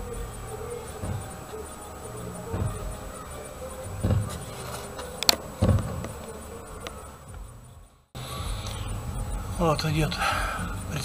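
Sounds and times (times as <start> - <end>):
faint buzz: 0.0 - 11.0.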